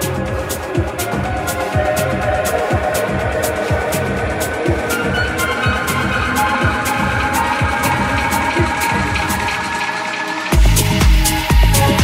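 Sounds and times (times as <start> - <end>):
kick drum: 0.0 - 9.7, 10.5 - 12.0
electronic dance music: 0.0 - 12.0
off-beat hi-hats: 0.0 - 12.0.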